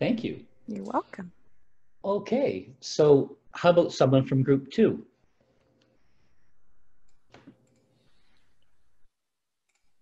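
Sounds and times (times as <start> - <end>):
faint video call line noise: 0.0 - 9.1.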